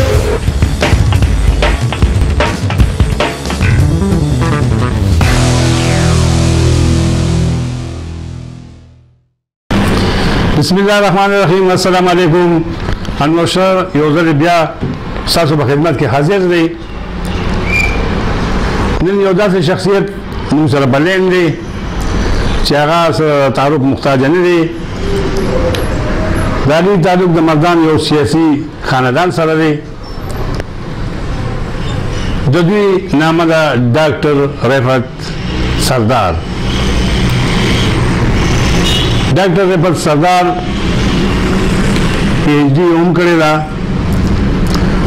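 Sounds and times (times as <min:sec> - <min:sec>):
low rumble: 0:02.8 - 0:08.8
brief high tone: 0:03.6 - 0:06.7.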